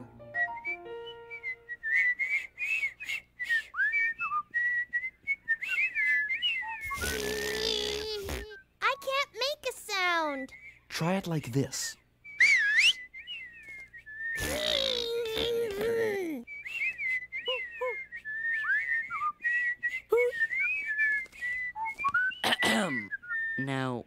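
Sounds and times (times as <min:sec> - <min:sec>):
person whistling: 0:00.0 - 0:08.4, 0:12.3 - 0:23.7
short vocal sound: 0:06.8 - 0:08.5.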